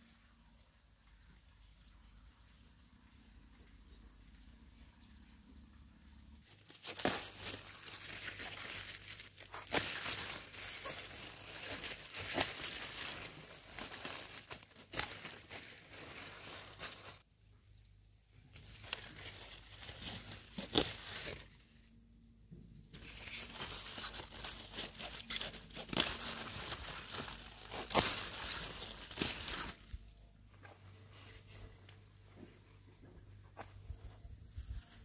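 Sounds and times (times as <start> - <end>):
leafy greens rustling and crunching: 6.4 - 17.3, 18.4 - 21.9, 22.9 - 35.0.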